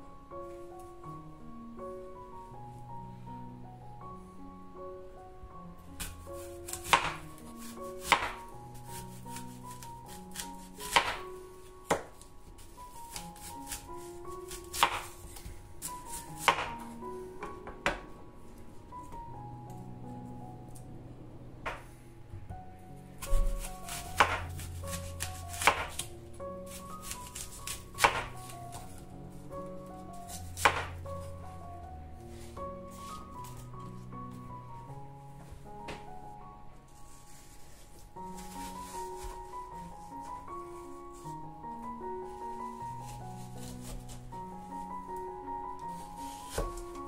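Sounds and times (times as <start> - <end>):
soft piano background music: 0.0 - 47.0
knife slicing through apple: 6.0 - 16.9, 23.2 - 26.1, 26.7 - 29.0, 30.3 - 31.4, 43.0 - 44.3, 45.9 - 47.0.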